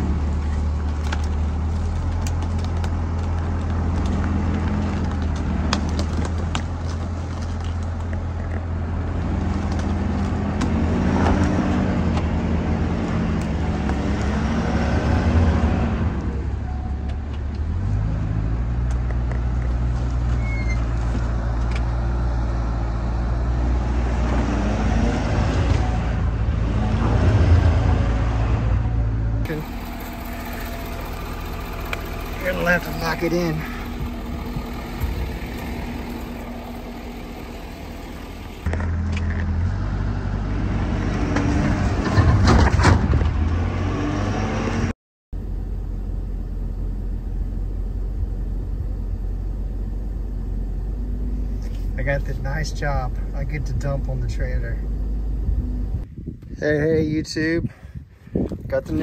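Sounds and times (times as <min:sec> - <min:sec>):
truck engine running under load: 0:00.0 - 0:43.4.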